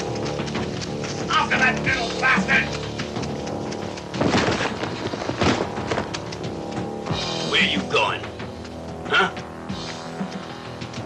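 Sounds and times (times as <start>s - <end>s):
film score music: 0.0s - 11.0s.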